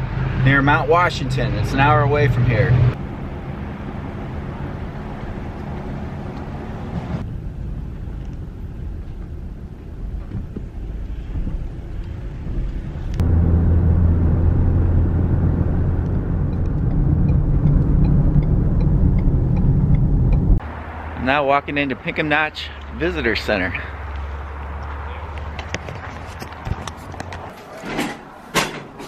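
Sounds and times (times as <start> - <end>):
car engine and road rumble: 0.0 - 29.0.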